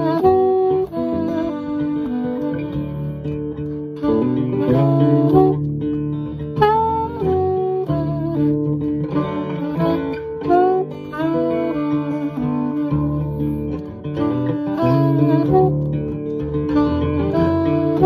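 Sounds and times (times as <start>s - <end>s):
acoustic guitar strumming chords: 0.0s - 18.0s
saxophone melody: 0.0s - 18.0s.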